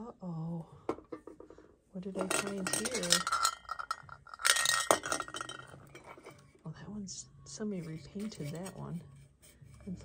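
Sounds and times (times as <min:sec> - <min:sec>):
tin noisemaker clicking and clinking: 0:02.2 - 0:06.3.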